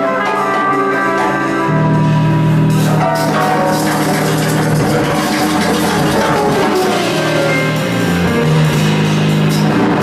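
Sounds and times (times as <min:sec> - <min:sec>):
held keyboard notes: 0:00.0 - 0:10.0
live band playing improvised music: 0:00.0 - 0:10.0.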